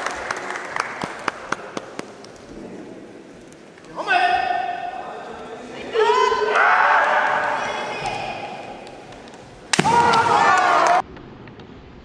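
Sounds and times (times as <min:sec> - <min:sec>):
fighters shouting: 0:05.8 - 0:08.8, 0:09.8 - 0:11.0
bamboo sword strike crack: 0:09.7 - 0:10.4.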